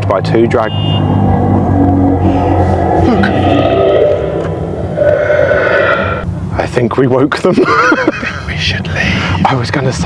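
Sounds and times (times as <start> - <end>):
dragon growl with echo: 1.2 - 6.2.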